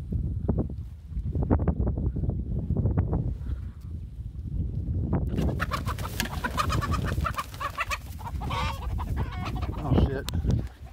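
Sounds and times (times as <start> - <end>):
chickens clucking and squawking: 5.3 - 10.9.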